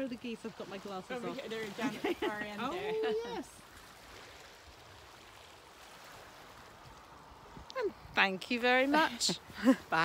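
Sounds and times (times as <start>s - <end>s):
waves lapping on pebbles: 0.0s - 10.0s.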